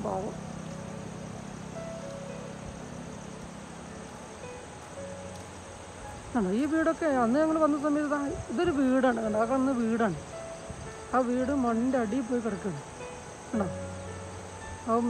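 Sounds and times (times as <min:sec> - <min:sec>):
faint background music: 0:00.0 - 0:15.0
faint steady hum: 0:00.0 - 0:15.0.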